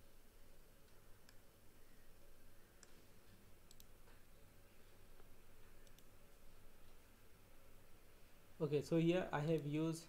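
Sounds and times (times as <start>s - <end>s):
low room hum: 0.0s - 10.0s
faint computer mouse clicks: 2.8s - 3.0s, 3.6s - 4.2s, 5.2s - 6.1s.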